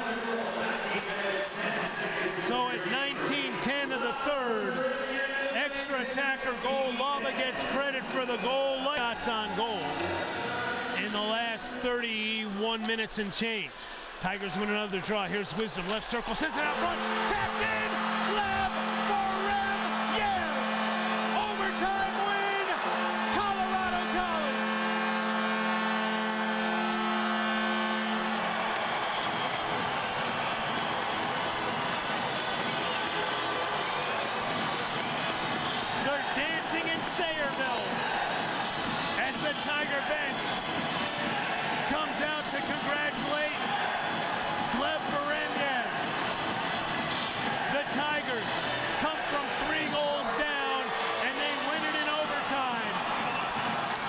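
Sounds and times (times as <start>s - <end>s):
crowd cheering and shouting: 0.0s - 54.0s
goal horn: 16.4s - 44.0s, 47.6s - 53.7s.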